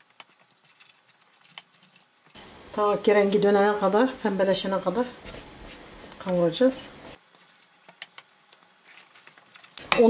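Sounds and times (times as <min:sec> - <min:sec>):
wooden spoon stirring in pot: 0:00.0 - 0:10.0.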